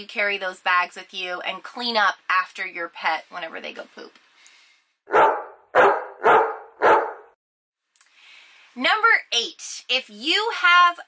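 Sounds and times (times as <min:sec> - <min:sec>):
dog barking: 0:05.1 - 0:07.4.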